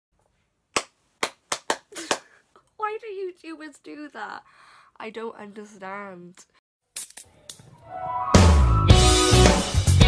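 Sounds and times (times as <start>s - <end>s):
person clapping hands: 0.7s - 2.4s.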